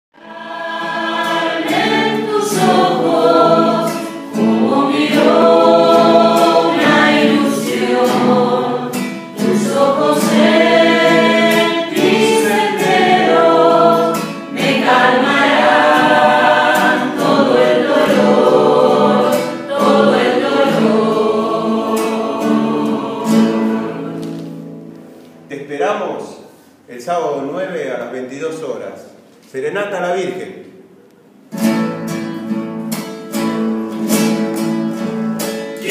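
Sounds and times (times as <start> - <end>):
group singing devotional song: 0.2 - 24.8
acoustic guitar strumming: 0.2 - 25.5, 31.3 - 35.9.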